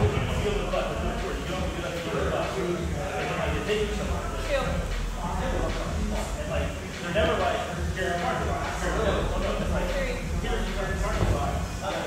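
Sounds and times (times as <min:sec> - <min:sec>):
steady low rumble: 0:00.0 - 0:06.7, 0:07.8 - 0:11.8.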